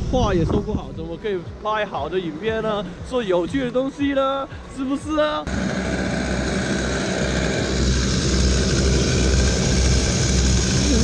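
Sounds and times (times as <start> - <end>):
go-kart engines running: 5.5 - 11.0.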